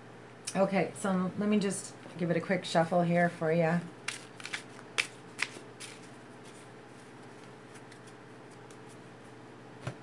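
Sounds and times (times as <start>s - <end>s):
cards shuffling: 4.0s - 9.0s.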